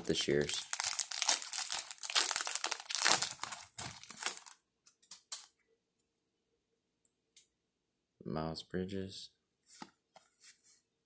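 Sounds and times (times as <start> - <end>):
card pack wrapper tearing and crinkling: 0.0 - 4.6.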